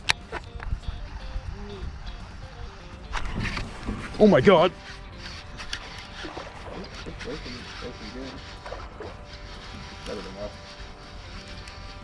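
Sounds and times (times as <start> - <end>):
fishing reel clicking: 0.0 - 12.0
steady hum: 0.0 - 12.0.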